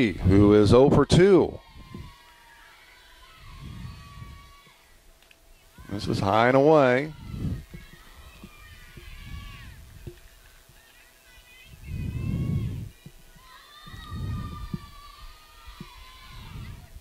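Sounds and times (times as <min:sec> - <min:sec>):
wind rumbling on microphone: 0:00.0 - 0:02.2, 0:03.3 - 0:04.7, 0:07.0 - 0:10.8, 0:11.4 - 0:17.0
distant voices calling out and chanting: 0:00.0 - 0:17.0
faint clicks: 0:04.6 - 0:05.4.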